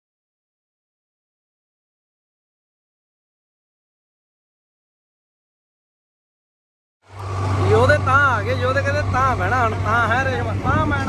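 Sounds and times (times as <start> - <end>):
vehicle drone: 7.0 - 11.0
man talking: 7.6 - 11.0.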